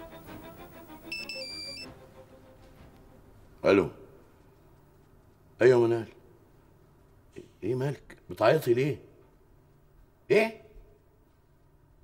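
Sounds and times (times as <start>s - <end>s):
soft background music: 0.0s - 6.1s
phone ringtone beeping melody: 1.0s - 1.9s.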